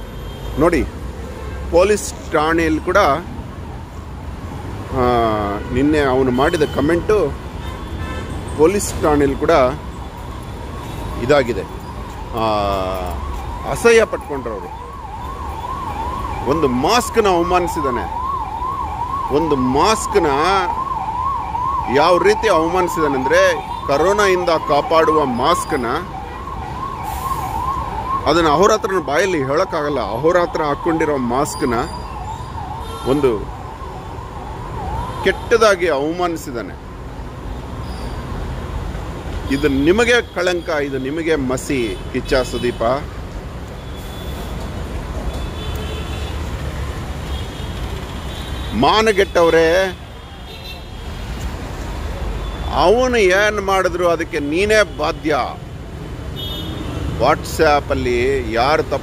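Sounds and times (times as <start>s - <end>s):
electronic siren sweeping: 9.0s - 36.7s.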